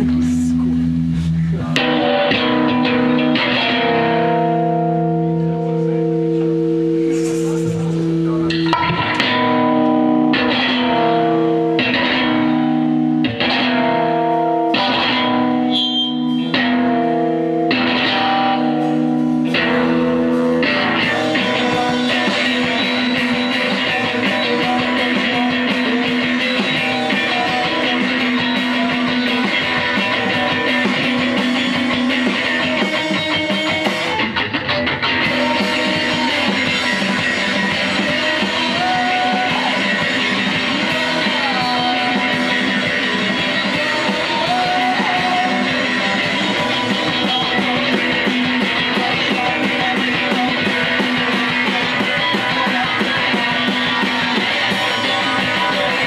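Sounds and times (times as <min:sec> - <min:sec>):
electric guitar chords ringing: 0:00.0 - 0:56.0.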